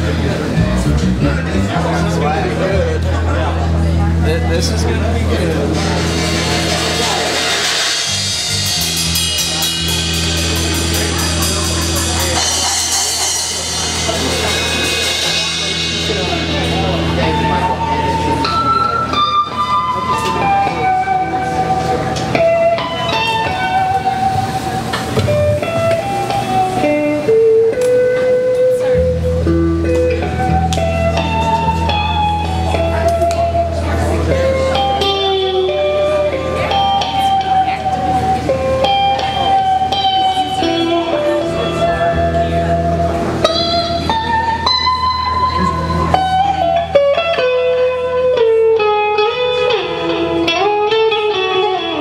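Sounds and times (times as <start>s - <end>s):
bass guitar: 0.0s - 52.0s
electric guitar: 0.0s - 52.0s
drum kit with cymbals: 3.7s - 52.0s.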